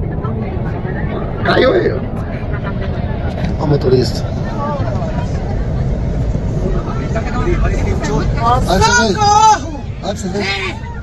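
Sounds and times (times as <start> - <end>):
steady low rumble: 0.0 - 11.0
excited voices: 6.8 - 11.0.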